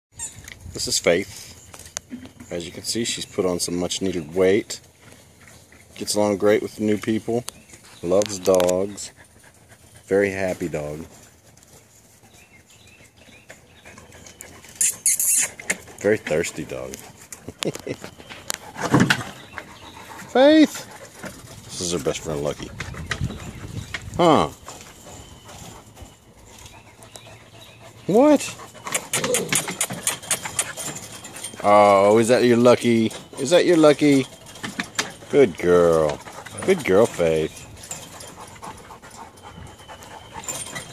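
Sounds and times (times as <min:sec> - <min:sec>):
dog panting: 0:08.2 - 0:40.9.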